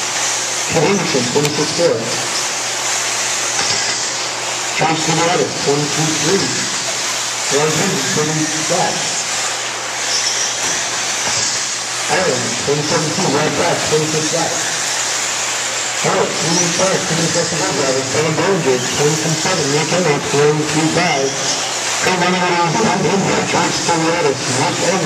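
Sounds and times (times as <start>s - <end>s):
electric rc cars whining: 0.0s - 25.0s
steady hiss: 0.0s - 25.0s
voices talking: 0.7s - 2.3s, 4.8s - 6.6s, 7.5s - 9.2s, 12.1s - 14.8s, 16.0s - 25.0s.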